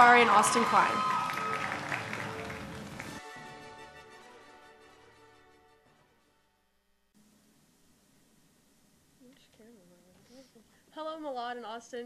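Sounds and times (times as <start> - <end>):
applause: 0.0 - 3.3
music: 0.0 - 6.8.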